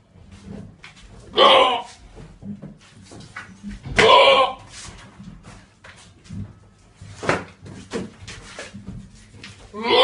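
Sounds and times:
goats grunting: 1.3 - 2.0, 9.7 - 10.0.

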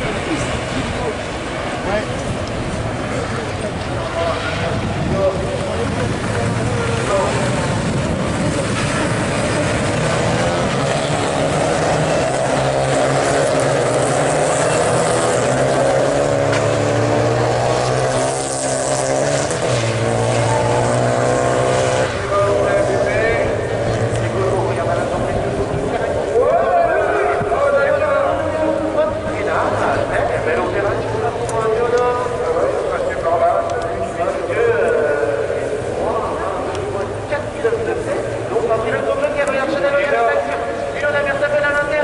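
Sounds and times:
race car engines accelerating: 0.0 - 42.0.

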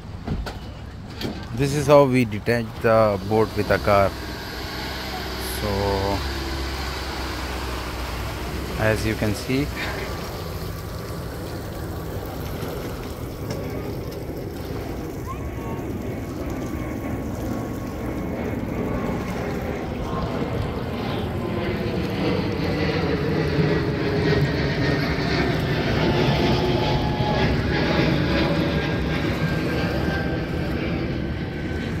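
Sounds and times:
outboard motor running: 1.5 - 32.0.

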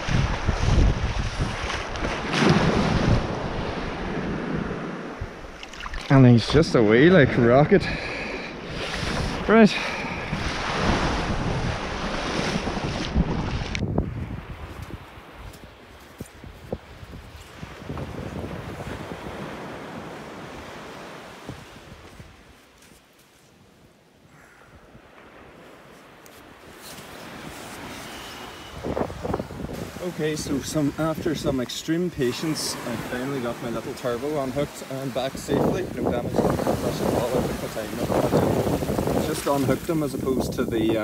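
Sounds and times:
surf washing onto beach: 0.0 - 22.6, 25.0 - 41.0
wind on microphone: 0.0 - 22.6, 27.0 - 31.6, 34.6 - 41.0.

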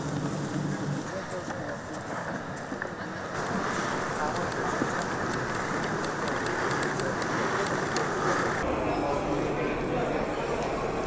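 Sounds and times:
outdoor ambient noise: 0.0 - 11.0.

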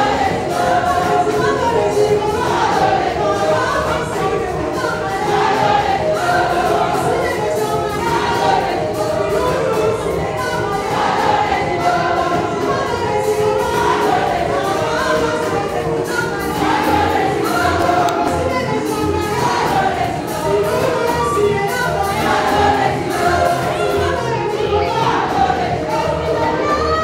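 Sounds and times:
congregation singing a praise song: 0.0 - 27.0.

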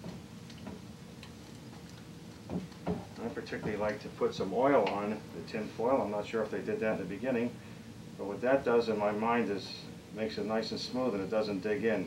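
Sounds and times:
soft knocks: 2.4 - 3.9.

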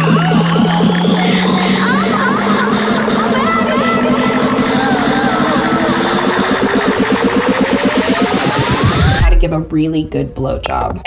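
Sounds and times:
electronic dance music: 0.0 - 9.5
rising synth sweeps: 0.0 - 9.5.

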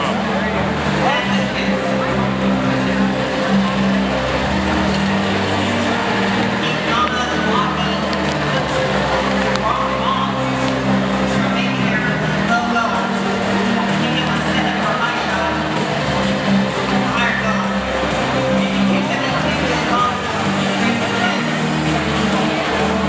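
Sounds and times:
crowd chatter and shouts: 0.0 - 23.0
music over public address: 0.0 - 23.0.

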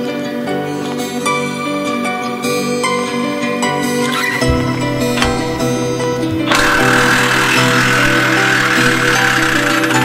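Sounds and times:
background music: 0.0 - 10.0
impact wrench running: 4.5 - 10.0.

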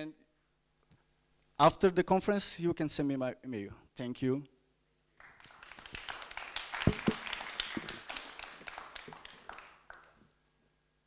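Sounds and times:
audience applauding: 5.2 - 10.2.

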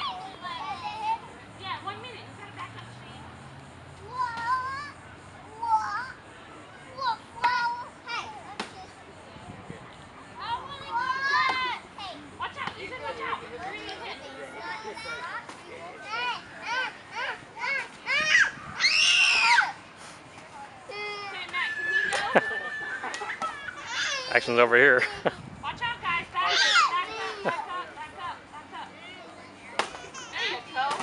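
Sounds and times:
children shouting and chattering: 0.0 - 31.0
child shrieking: 18.1 - 19.7, 23.9 - 24.3, 26.5 - 27.0.

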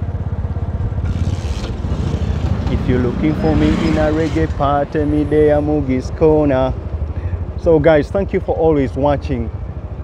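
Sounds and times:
road and wind noise: 0.0 - 10.0
small motorcycle engine putter: 1.0 - 2.8.

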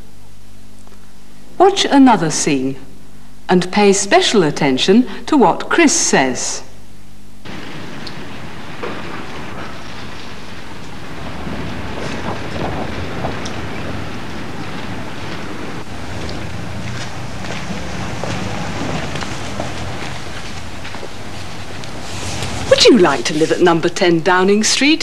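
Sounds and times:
low street rumble with hiss: 0.0 - 25.0.

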